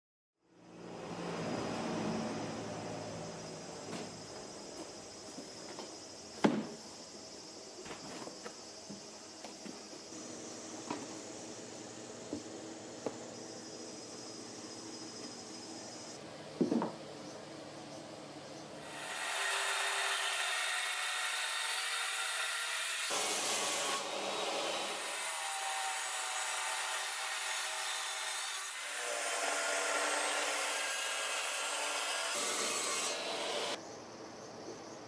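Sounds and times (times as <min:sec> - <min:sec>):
table saw cutting wood: 0:18.8 - 0:33.8.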